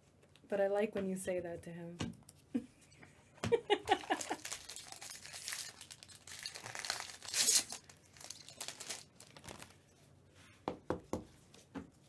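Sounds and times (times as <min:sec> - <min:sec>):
foil wrapper tearing and crinkling: 0:04.0 - 0:09.8.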